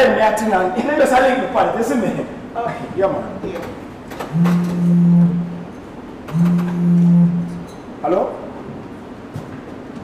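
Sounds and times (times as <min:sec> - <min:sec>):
phone buzzing tones: 0:04.3 - 0:07.7.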